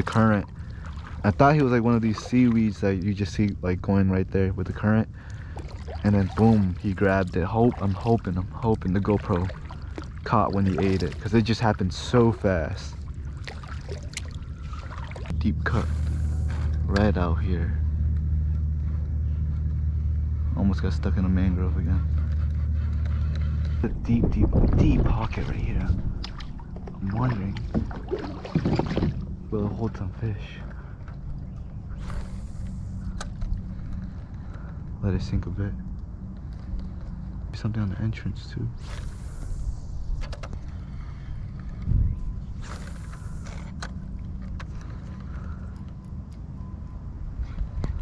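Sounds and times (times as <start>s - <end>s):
water trickling against kayak: 0.0s - 3.8s, 4.6s - 15.3s, 25.2s - 34.9s
steady low rumble: 0.0s - 48.0s
wind on microphone: 23.8s - 29.5s, 41.6s - 43.5s.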